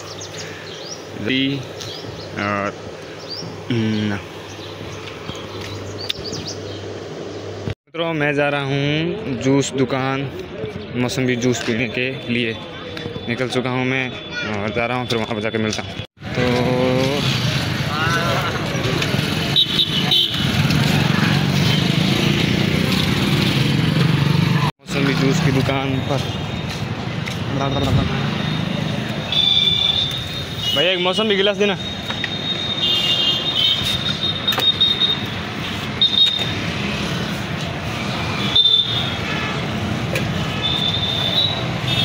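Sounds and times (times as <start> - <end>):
street traffic: 0.0 - 42.0.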